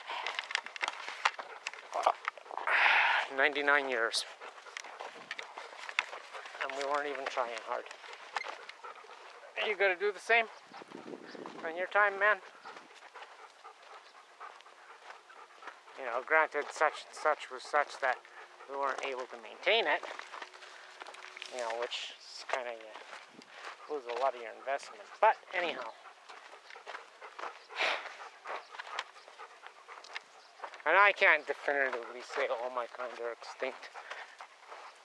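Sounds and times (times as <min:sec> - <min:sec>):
light rustles and ticks: 0:00.0 - 0:02.7, 0:03.3 - 0:35.0
faint panting breaths: 0:00.0 - 0:35.0.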